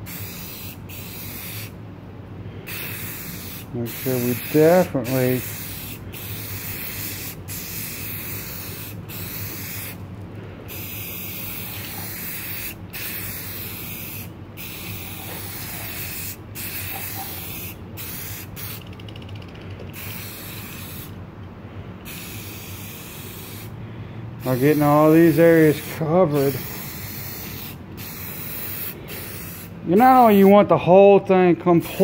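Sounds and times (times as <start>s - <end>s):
aerosol spray can hissing: 0.0s - 1.8s, 2.7s - 10.0s, 10.7s - 19.0s, 19.9s - 21.2s, 22.0s - 23.7s, 24.4s - 30.5s.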